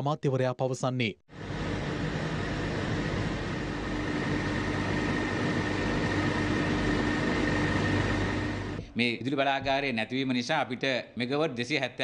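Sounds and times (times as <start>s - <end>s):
machinery two-tone hum: 1.3s - 9.0s.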